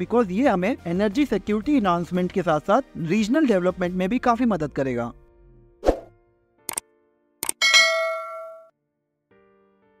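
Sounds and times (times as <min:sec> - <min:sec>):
bell-like chime: 0:07.6 - 0:08.7.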